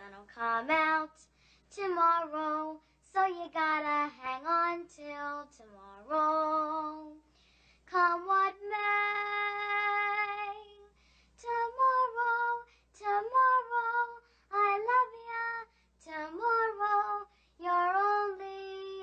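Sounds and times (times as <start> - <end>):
person singing unaccompanied: 7.9 - 19.0.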